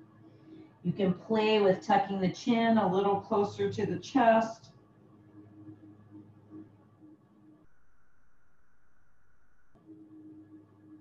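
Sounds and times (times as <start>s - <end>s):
faint low hum: 0.0s - 11.0s
faint high electronic tone: 3.1s - 11.0s.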